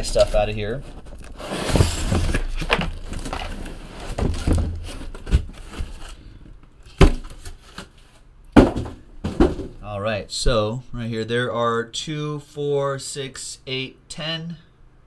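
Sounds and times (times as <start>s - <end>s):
cardboard boxes rustling and scraping: 0.0s - 9.8s
boxes knocking on tabletop: 8.6s - 9.8s.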